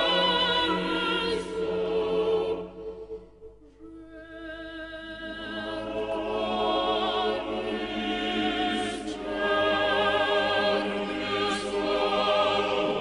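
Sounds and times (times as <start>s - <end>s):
choir singing sustained chords: 0.0s - 13.0s.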